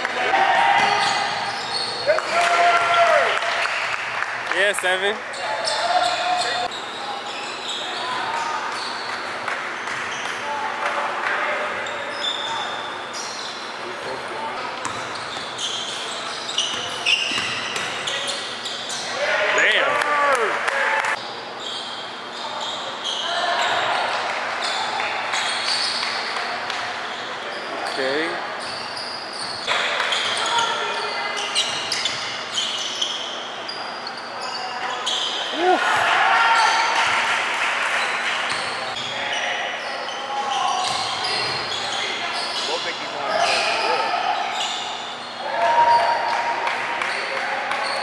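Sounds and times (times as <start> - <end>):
voices of players and spectators: 0.0 - 48.0.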